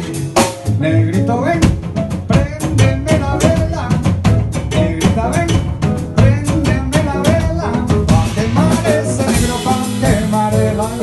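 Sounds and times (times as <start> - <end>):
drum kit and cajon rhythm: 0.0 - 11.0
jazz band playing: 0.0 - 11.0.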